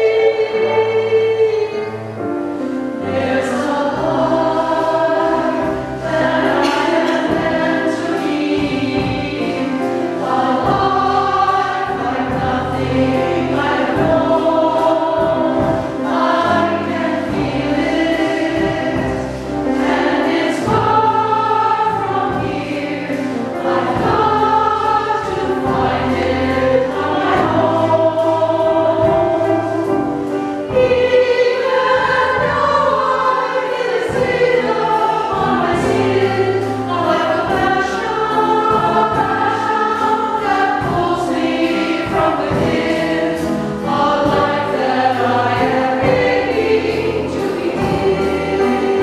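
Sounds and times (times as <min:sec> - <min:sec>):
choir singing in harmony: 0:00.0 - 0:49.0
piano accompaniment: 0:00.0 - 0:49.0.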